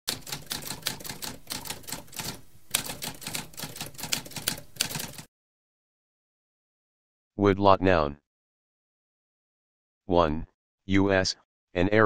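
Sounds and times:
typewriter keys clicking: 0:00.1 - 0:05.3.

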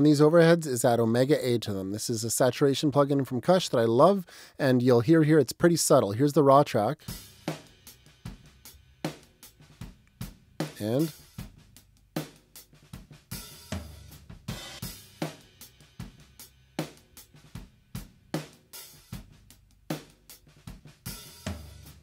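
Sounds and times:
drum kit groove: 0:00.0 - 0:22.0.

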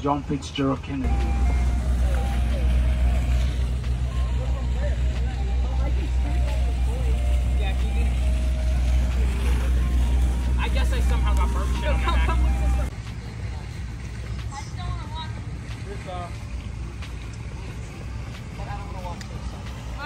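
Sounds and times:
people's voices: 0:00.0 - 0:20.0
steady low rumble: 0:00.3 - 0:20.0.

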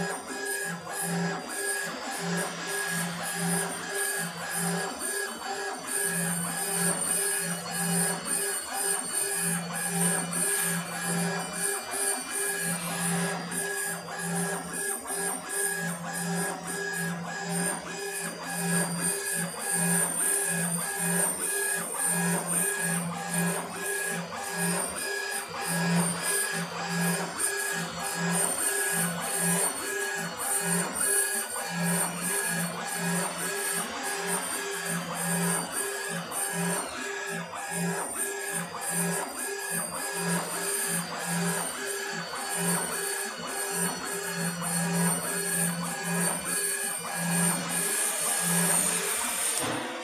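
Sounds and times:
laser engraver drive humming: 0:00.0 - 0:50.0.

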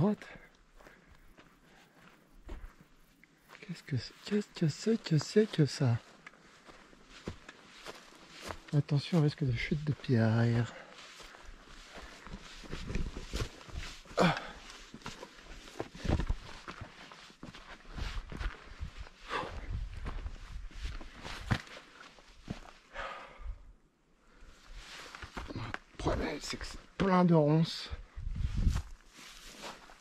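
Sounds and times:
footsteps on dry grass and stones: 0:00.0 - 0:22.9, 0:24.6 - 0:27.2, 0:28.0 - 0:30.0.

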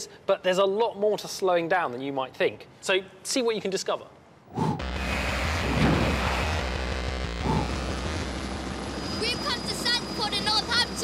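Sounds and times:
whooshing sweeps: 0:04.5 - 0:08.8.

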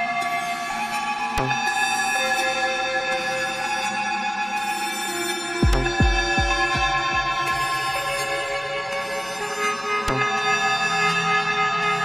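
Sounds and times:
ambient instrumental music: 0:00.0 - 0:12.0.

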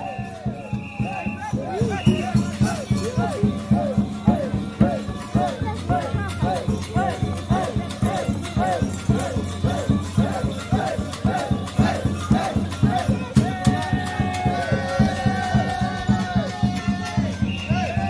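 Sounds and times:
drum beating steadily: 0:00.0 - 0:18.0
folk melody: 0:00.0 - 0:18.0.

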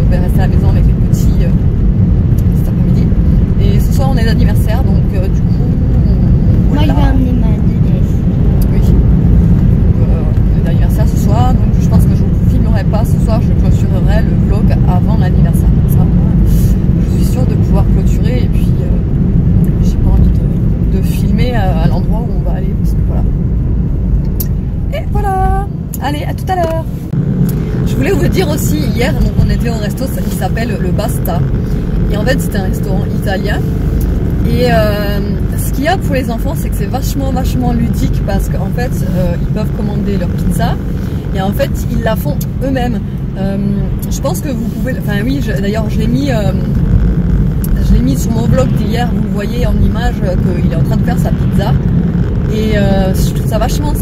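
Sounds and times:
woman talking: 0:00.0 - 0:01.6, 0:02.4 - 0:09.1, 0:10.0 - 0:19.1, 0:19.7 - 0:23.3, 0:24.4 - 0:27.0, 0:27.8 - 0:33.8, 0:34.4 - 0:46.8, 0:47.6 - 0:51.8, 0:52.5 - 0:54.0
car cabin road and engine rumble: 0:00.0 - 0:54.0.

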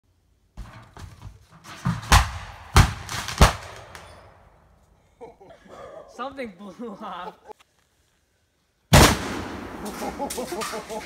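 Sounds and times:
fireworks bangs: 0:01.8 - 0:04.4, 0:08.9 - 0:11.0
fireworks crackling: 0:02.1 - 0:04.2, 0:08.9 - 0:11.0.

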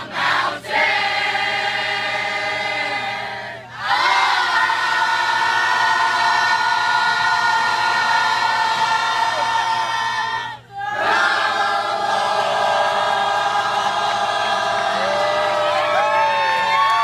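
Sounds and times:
group singing sustained notes: 0:00.0 - 0:16.7.

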